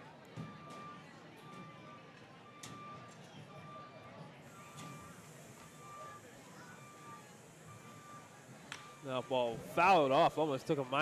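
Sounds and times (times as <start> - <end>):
faint ballpark background: 0.0 - 11.0.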